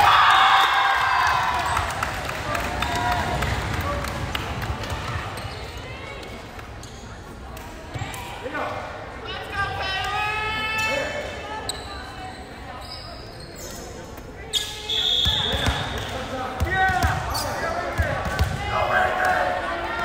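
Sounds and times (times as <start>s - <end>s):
sneaker squeaks on hardwood floor: 11.6s - 16.2s
short steady whistle: 14.8s - 15.6s.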